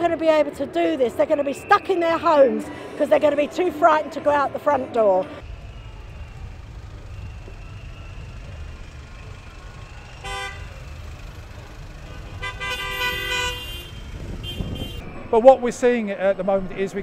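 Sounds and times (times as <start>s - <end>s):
low rumble of road traffic: 5.2s - 17.0s
car horn: 9.8s - 15.2s.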